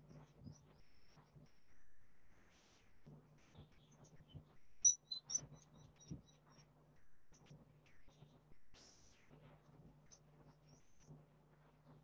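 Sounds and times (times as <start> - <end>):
bird chirping: 4.8 - 6.4.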